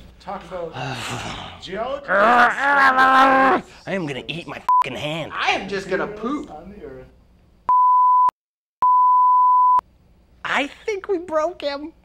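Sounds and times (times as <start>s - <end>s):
electronic beep tone: 7.7s - 9.8s.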